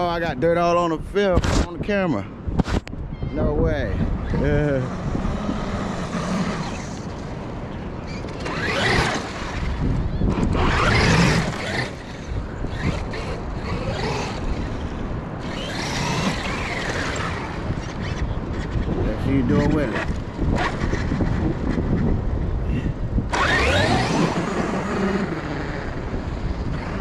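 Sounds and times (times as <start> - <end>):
electric toy truck motor whining: 8.1 - 18.2, 23.3 - 27.0.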